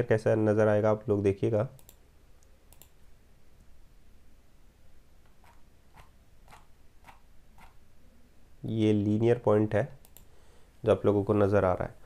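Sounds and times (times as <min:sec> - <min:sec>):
faint computer mouse clicks: 0:01.8 - 0:03.0, 0:10.0 - 0:10.3.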